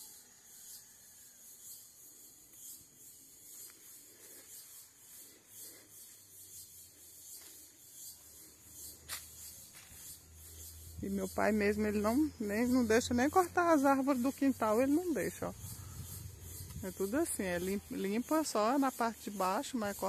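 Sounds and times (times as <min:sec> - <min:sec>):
pulsing insect buzz: 0:00.0 - 0:20.0
footsteps on dry leaves: 0:08.9 - 0:11.0.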